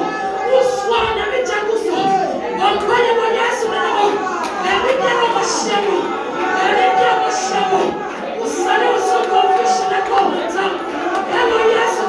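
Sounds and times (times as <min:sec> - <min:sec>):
women praying aloud: 0:00.0 - 0:12.0.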